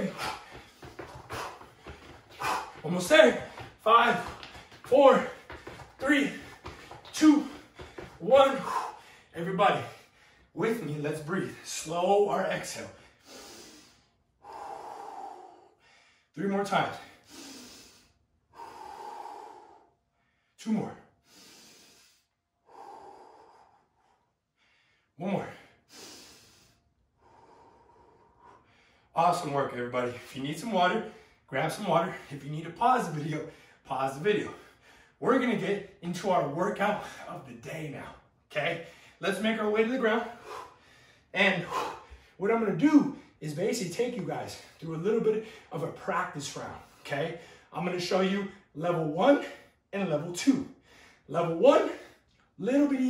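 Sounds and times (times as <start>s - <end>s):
sneaker scuffs on tile floor: 0.0s - 8.8s
man breathing hard: 0.0s - 10.6s, 13.0s - 16.4s, 17.0s - 29.1s, 34.5s - 35.2s, 38.8s - 39.2s, 40.2s - 42.4s, 46.8s - 47.7s, 50.7s - 52.4s.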